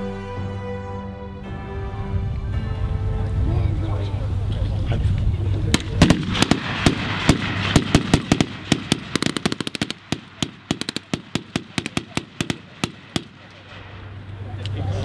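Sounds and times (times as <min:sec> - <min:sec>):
rifles firing blanks: 0:05.7 - 0:14.7.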